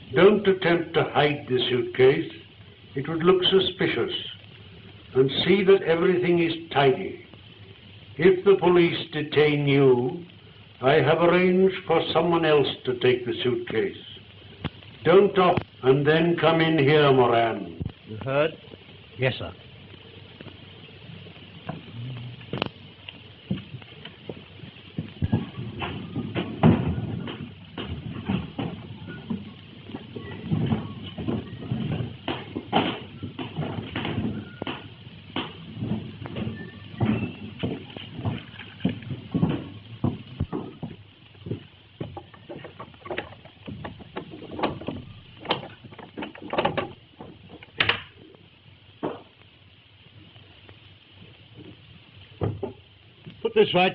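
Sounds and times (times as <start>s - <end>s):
irregular knocks and taps: 23.5s - 48.1s, 49.0s - 49.4s, 52.4s - 53.4s.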